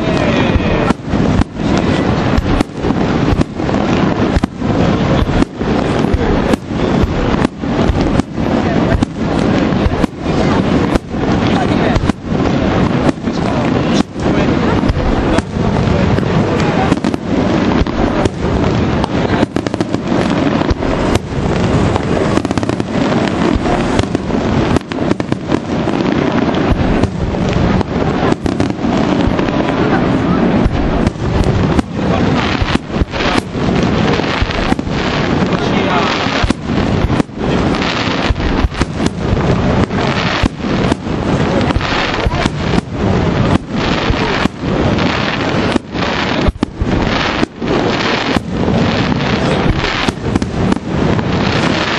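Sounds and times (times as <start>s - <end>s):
fireworks shells bursting: 0.0s - 51.9s.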